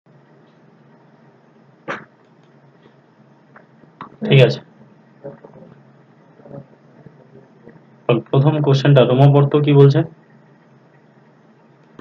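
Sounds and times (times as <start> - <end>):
faint background hiss: 0.1 - 12.0.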